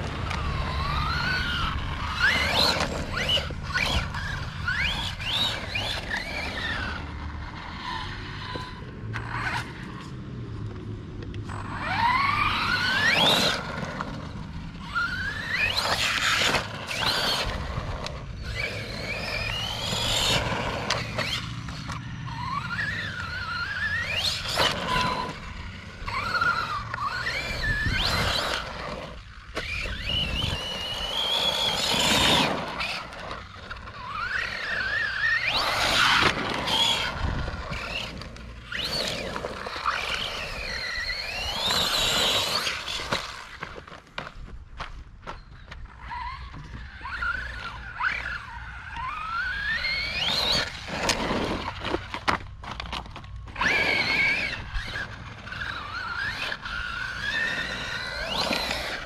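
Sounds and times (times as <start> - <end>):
electric motor whine: 0.0 - 44.3, 45.3 - 59.0
tyres crunching on loose dirt: 0.0 - 59.0.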